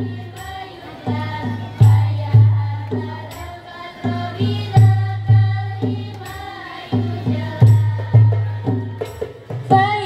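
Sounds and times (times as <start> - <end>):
group singing a devotional melody: 0.0 - 10.0.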